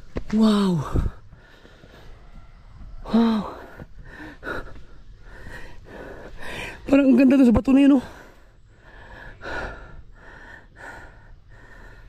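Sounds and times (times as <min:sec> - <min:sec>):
person breathing hard: 0:00.7 - 0:06.9, 0:08.0 - 0:12.0.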